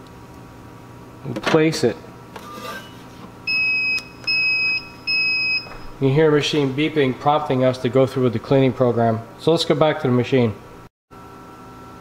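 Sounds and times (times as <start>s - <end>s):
coffee machine beeping: 3.5s - 5.9s.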